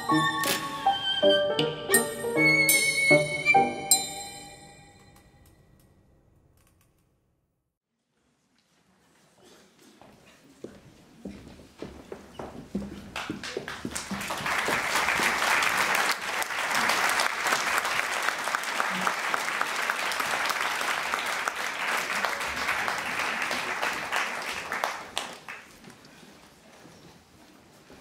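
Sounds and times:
people applauding: 0:13.2 - 0:25.9.

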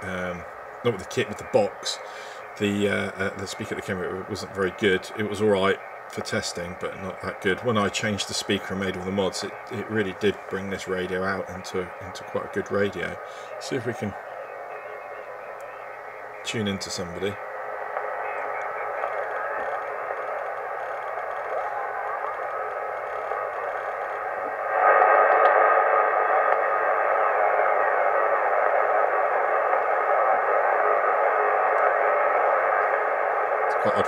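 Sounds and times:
radio band noise hiss: 0:00.0 - 0:34.0.

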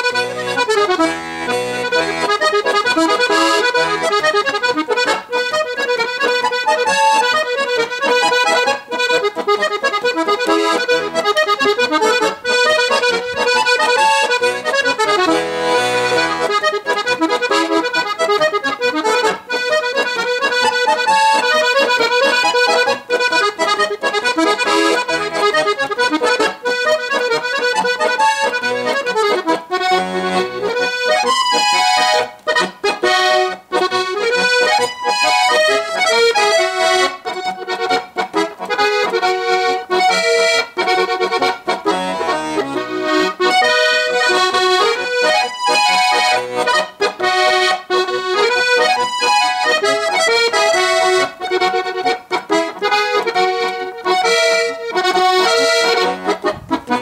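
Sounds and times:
accordion playing a polka: 0:00.0 - 0:57.0.

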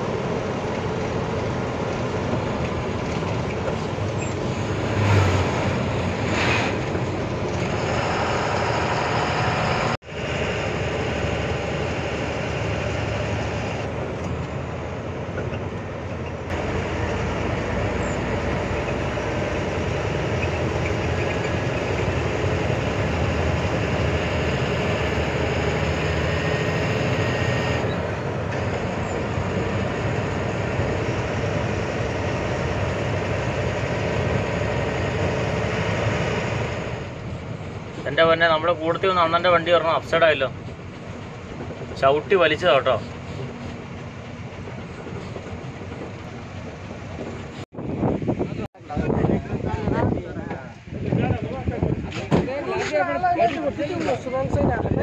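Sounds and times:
road noise: 0:00.0 - 0:55.0
truck engine rumble: 0:00.0 - 0:55.0.

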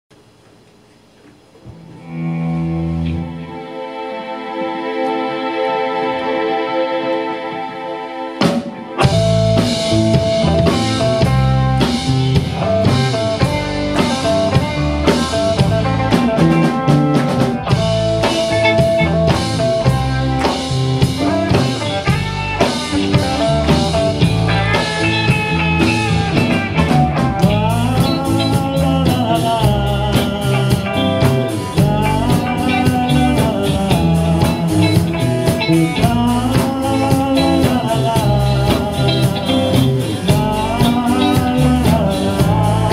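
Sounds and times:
keyboard chords: 0:00.2 - 0:42.9
rock band playing: 0:01.6 - 0:42.9.

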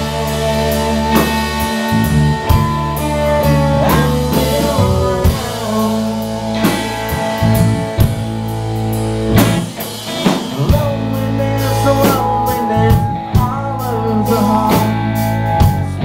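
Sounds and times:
drum and cymbal hits: 0:00.0 - 0:15.9
rock band playing: 0:00.0 - 0:16.0.

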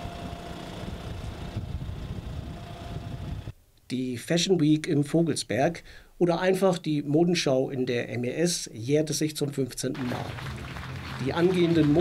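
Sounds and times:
tractor diesel engine running: 0:00.0 - 0:03.5.

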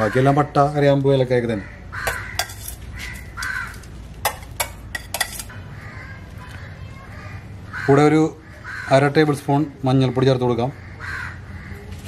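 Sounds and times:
metal spoon clinking on cookware: 0:02.0 - 0:03.2, 0:04.2 - 0:05.5.

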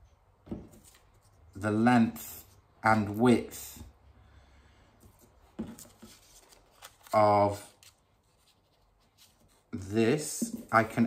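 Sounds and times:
low room noise: 0:00.0 - 0:11.0
paper rustle: 0:05.6 - 0:09.6
paper sheets handling: 0:05.6 - 0:09.6.

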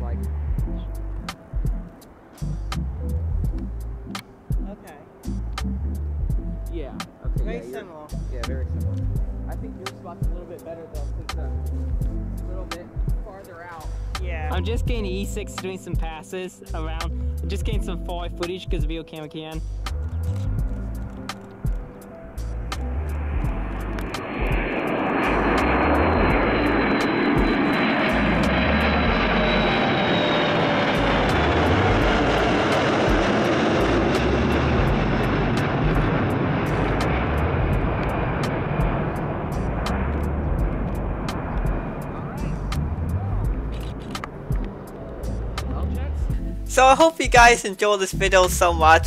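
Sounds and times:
jet aircraft passing with whine: 0:00.0 - 0:17.5, 0:19.9 - 0:49.0.

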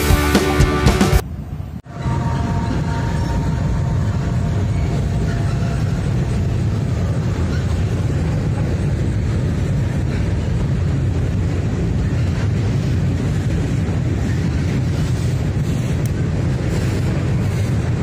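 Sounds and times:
train wheels rumbling on bridge: 0:00.0 - 0:18.0.

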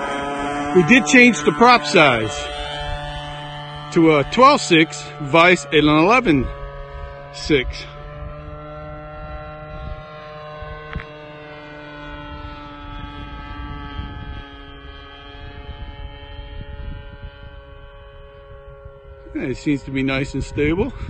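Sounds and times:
model plane engine droning: 0:00.0 - 0:21.0.

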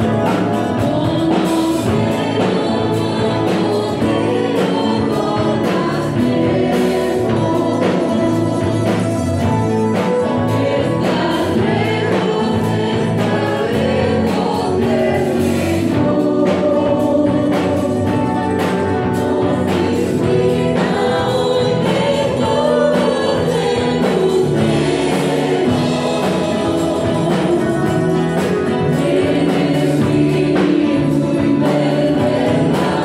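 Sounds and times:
band with guitars and drums: 0:00.0 - 0:33.0
congregation singing a hymn: 0:00.0 - 0:33.0.

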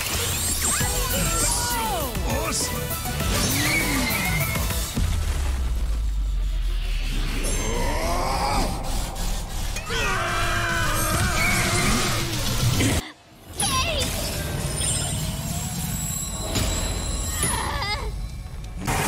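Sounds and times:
dramatic music: 0:00.0 - 0:13.0
wordless screams and roars: 0:07.3 - 0:13.0
long strained yell: 0:07.5 - 0:12.4.

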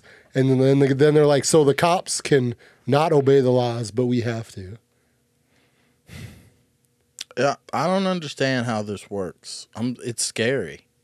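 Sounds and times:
person sighing: 0:06.1 - 0:06.6.

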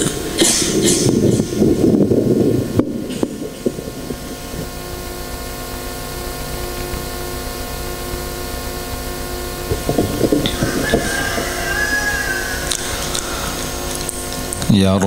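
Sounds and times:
held tones: 0:00.0 - 0:15.0
low hum: 0:00.0 - 0:15.0
microphone rubbing noise: 0:00.0 - 0:15.0
microphone knocks: 0:09.6 - 0:11.5.

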